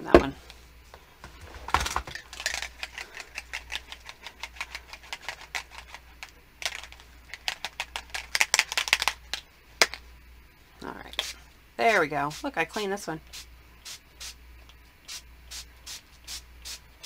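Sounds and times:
spray bottle clicking and rattling: 0:02.1 - 0:10.0.

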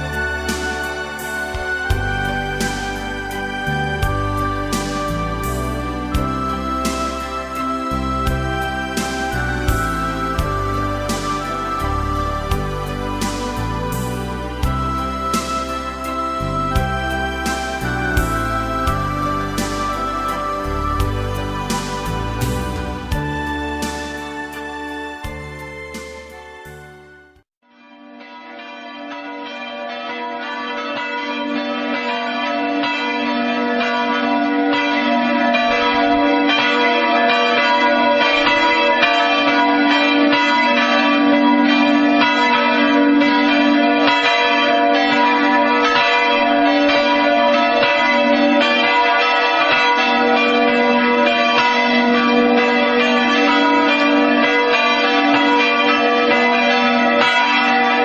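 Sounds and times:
church bells pealing: 0:00.0 - 0:58.0.

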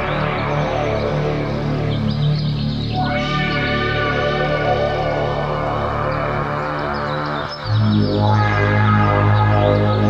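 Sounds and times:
ambient synthesizer music: 0:00.0 - 0:10.0.

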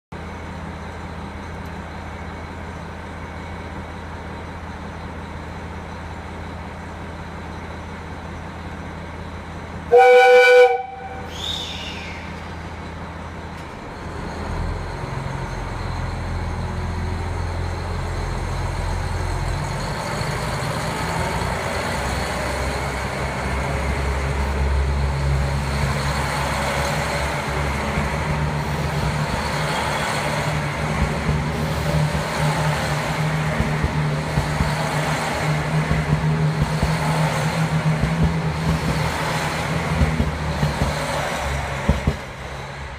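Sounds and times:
diesel railcar idling: 0:00.1 - 0:42.9
train pulling away: 0:00.2 - 0:42.9
train horn blast: 0:09.9 - 0:11.6.

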